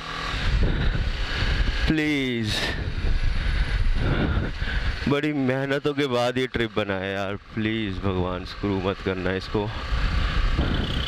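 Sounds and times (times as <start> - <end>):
motorcycle engine running: 0.0 - 11.0
road rumble: 0.0 - 11.0
wind on microphone: 0.2 - 5.1, 9.8 - 11.0
man speaking: 1.9 - 2.8.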